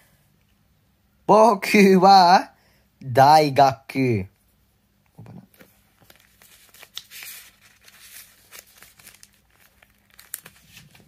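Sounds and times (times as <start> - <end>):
paper pages rustling: 5.5 - 11.0.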